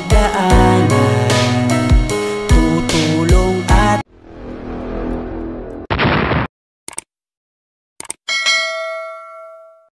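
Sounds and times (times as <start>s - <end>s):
short clicks: 6.9s - 7.1s, 8.0s - 8.2s
bell ding: 8.3s - 9.9s.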